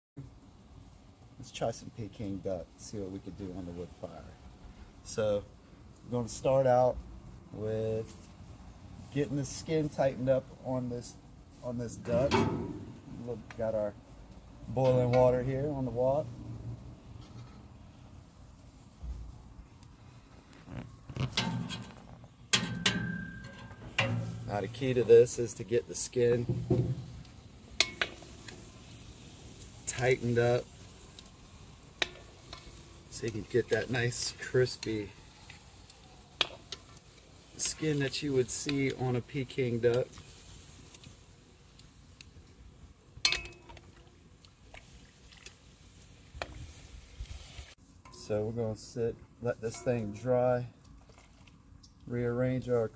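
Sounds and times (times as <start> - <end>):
ladle splashing and clanking in wok: 22.6 - 24.5, 26.4 - 29.0, 43.2 - 45.6
metal ladle clinking on wok: 27.8 - 28.2, 43.2 - 43.8, 49.7 - 50.1
water trickling and dripping: 43.2 - 46.4, 50.8 - 52.1.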